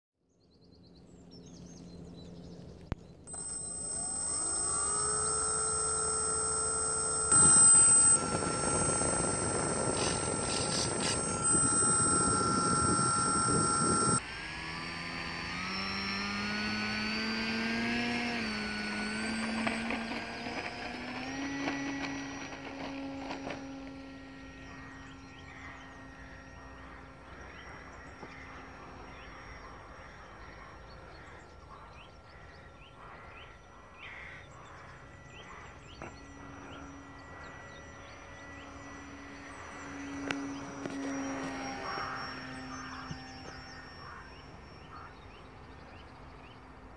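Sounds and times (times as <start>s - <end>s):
model plane motor whine: 1.0s - 46.9s.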